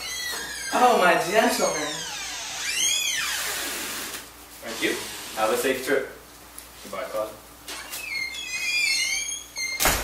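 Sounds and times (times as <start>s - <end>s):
door hinge squeaking: 0.0s - 4.0s, 7.7s - 10.0s
steady hiss: 3.4s - 7.4s.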